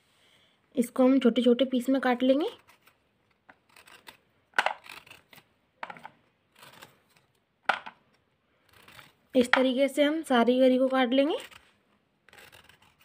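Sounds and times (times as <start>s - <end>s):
knife scraping through coconut: 2.5s - 7.3s, 8.6s - 9.6s, 10.8s - 13.0s.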